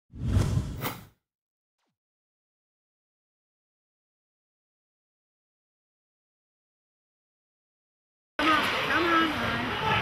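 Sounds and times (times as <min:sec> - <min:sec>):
whoosh sound effect: 0:00.1 - 0:01.1.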